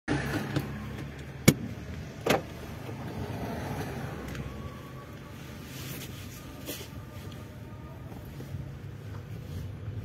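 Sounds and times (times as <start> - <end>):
road traffic: 0.1 - 10.0.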